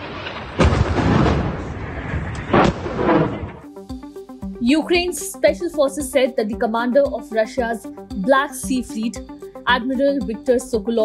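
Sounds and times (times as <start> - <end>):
explosion rumble: 0.0 - 3.7
sharp loud blast: 0.0 - 3.7.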